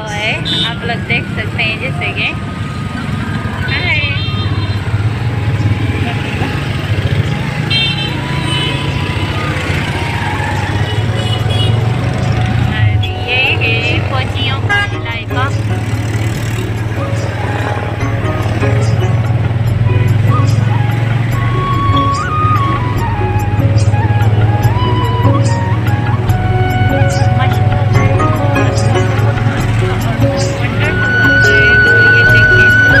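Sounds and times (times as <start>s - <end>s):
vehicle horns tooting: 0.0s - 23.4s, 24.0s - 33.0s
auto-rickshaw engine drone: 0.0s - 33.0s
street traffic: 0.0s - 33.0s.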